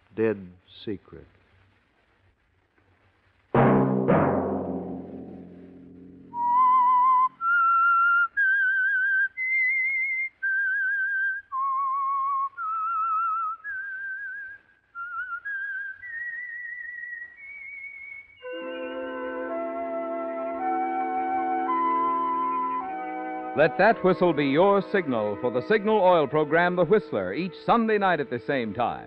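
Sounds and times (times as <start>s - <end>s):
orchestral chord with timpani: 3.6s - 6.6s, 18.5s - 27.1s
person whistling a slow melody: 6.3s - 24.8s.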